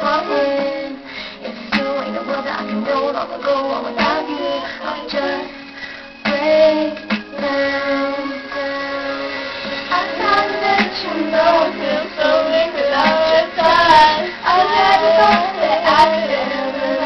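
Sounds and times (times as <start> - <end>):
girls singing: 0.0 - 5.6, 6.2 - 17.0
pop ballad backing track: 0.0 - 17.0.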